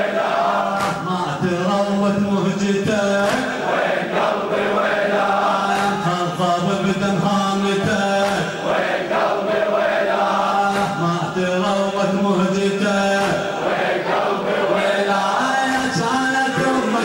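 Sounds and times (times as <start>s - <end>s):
men chanting together: 0.0s - 17.0s.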